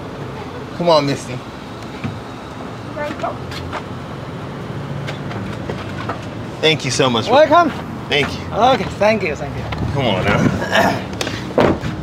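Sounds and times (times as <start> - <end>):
car engine idling: 0.0 - 12.0
outdoor background noise: 0.0 - 12.0.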